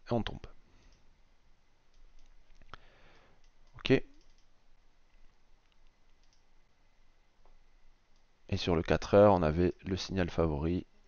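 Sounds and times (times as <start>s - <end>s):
computer mouse clicks: 1.9s - 2.8s, 3.4s - 4.5s, 5.1s - 6.5s.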